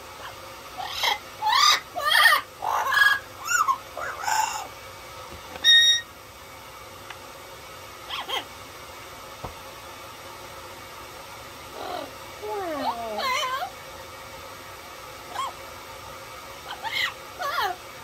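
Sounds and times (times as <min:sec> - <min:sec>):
parrot squawking calls: 0:00.2 - 0:04.7, 0:05.6 - 0:06.1, 0:08.0 - 0:08.5, 0:11.7 - 0:13.8, 0:15.3 - 0:15.6, 0:16.6 - 0:17.8
parrot whistle: 0:00.8 - 0:04.7, 0:05.6 - 0:06.1, 0:15.3 - 0:15.6.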